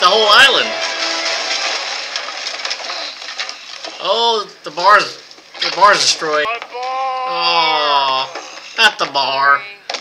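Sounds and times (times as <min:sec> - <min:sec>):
music: 0:00.6 - 0:01.9
wood crashing and splintering: 0:00.8 - 0:04.1.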